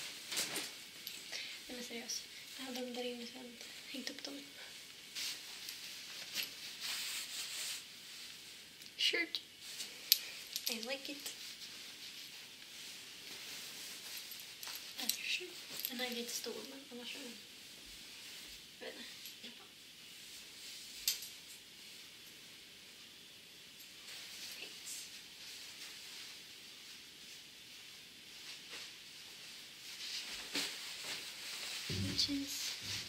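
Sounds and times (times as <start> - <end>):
fabric rustling: 0.0 - 8.8, 9.5 - 23.0, 23.9 - 33.0.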